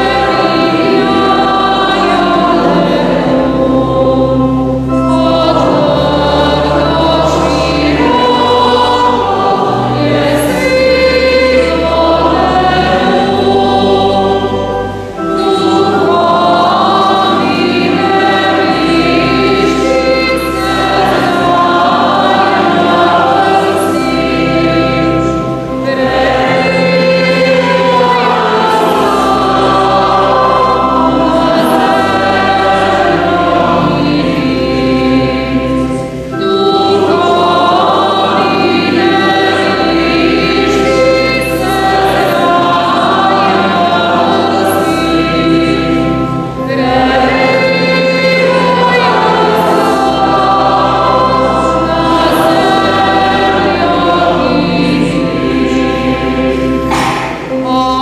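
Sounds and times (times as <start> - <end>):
choir singing a hymn: 0.0 - 58.0
sustained low accompanying notes: 0.0 - 58.0.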